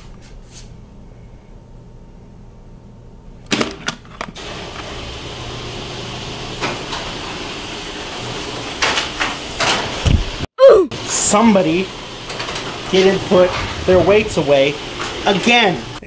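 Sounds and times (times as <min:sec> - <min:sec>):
door opening: 0:12.2 - 0:15.5.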